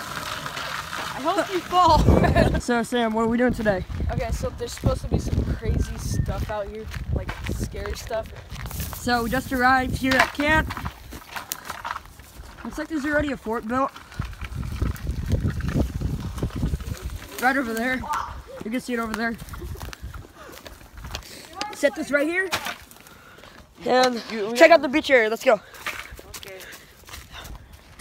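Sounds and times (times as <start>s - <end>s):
wind rumble: 1.0s - 21.2s
low rumbling on microphone: 1.8s - 2.6s, 14.0s - 17.4s
footsteps crunching on dry leaves: 3.8s - 21.5s.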